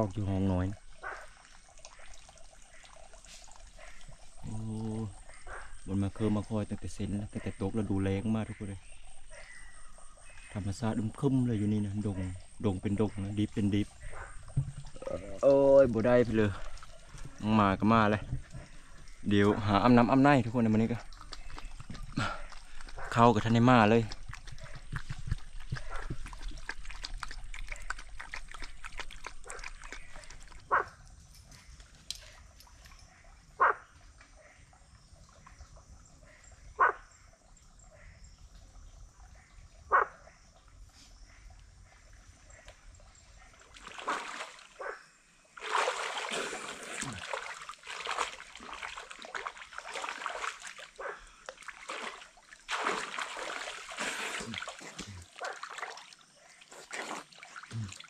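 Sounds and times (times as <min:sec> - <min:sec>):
water splashing and sloshing: 0:00.0 - 0:58.0
dog barking: 0:51.0 - 0:51.2.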